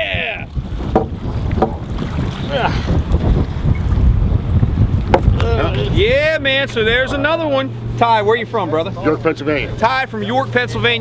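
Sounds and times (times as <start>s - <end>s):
wind buffeting microphone: 0.0s - 8.0s.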